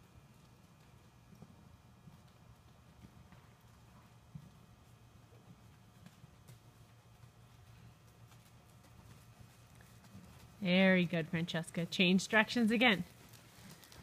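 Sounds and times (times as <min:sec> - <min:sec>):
low steady hum: 0:00.0 - 0:14.0
muffled hoofbeats on dirt: 0:00.0 - 0:14.0.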